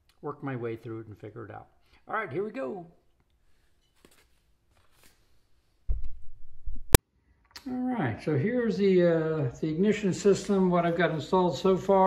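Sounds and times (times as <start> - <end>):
paper rustling: 3.4 - 5.8.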